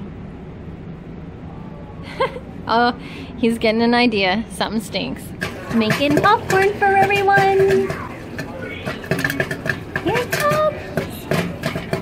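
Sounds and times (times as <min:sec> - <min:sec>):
popcorn popping: 0:05.2 - 0:12.0.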